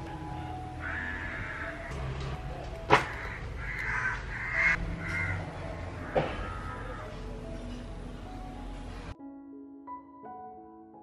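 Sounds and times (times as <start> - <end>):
crow cawing: 0.8 - 1.9, 2.9 - 7.2.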